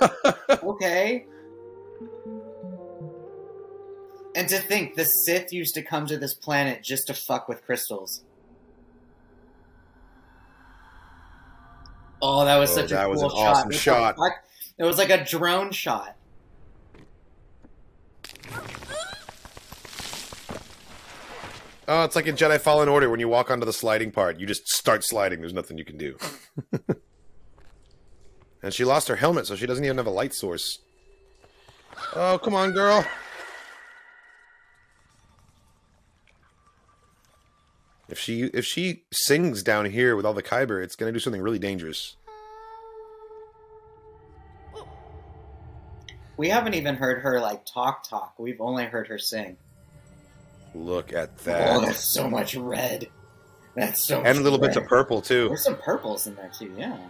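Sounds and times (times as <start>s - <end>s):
low rumble: 7.9s - 14.2s, 16.1s - 18.8s, 43.4s - 47.5s, 49.4s - 56.4s
gravel crunching and scraping: 16.8s - 22.6s
girl singing a long note: 42.3s - 44.9s.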